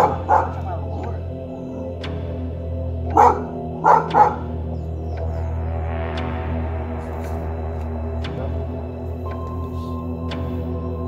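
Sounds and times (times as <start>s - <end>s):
dog barking: 0.0s - 1.4s, 3.0s - 4.8s
background music: 0.0s - 11.0s.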